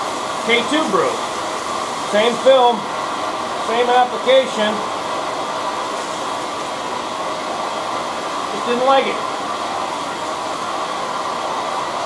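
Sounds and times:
water churning in a tank: 0.0 - 12.0.

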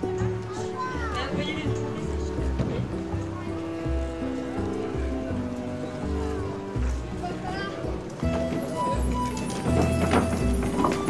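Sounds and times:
background music with sustained chords: 0.0 - 11.0.

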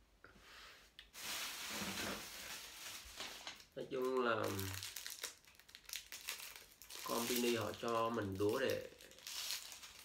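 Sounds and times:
wrapper crinkling and tearing: 1.1 - 10.0.

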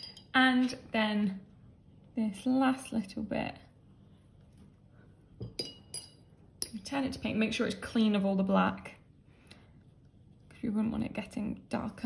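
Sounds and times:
light clink with ringing: 0.0 - 0.3, 5.4 - 6.8.

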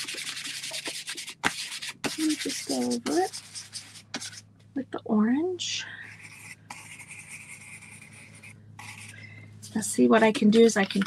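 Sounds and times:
stencil brush rubbing on board: 0.0 - 4.4, 6.2 - 11.0.

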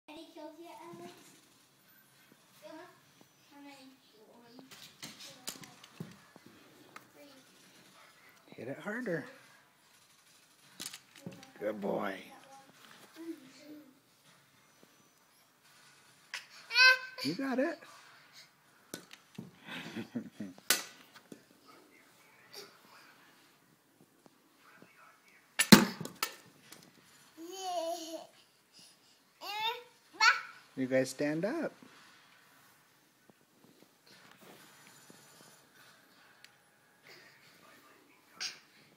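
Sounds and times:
plastic toy bat hitting ball: 20.7 - 21.0, 25.6 - 26.4
toy bat hitting ball: 20.7 - 21.0.

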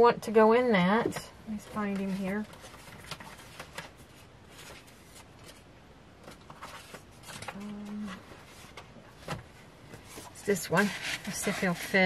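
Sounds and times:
paper rustling: 1.7 - 12.0.

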